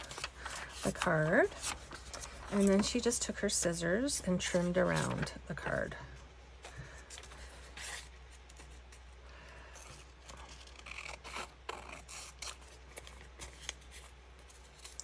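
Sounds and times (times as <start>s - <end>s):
paper rustling: 0.0s - 3.2s.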